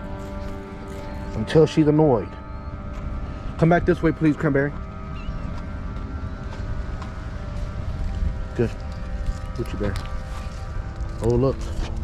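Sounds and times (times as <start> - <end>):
faint background music: 0.0 - 12.0
wind buffeting microphone: 4.7 - 12.0.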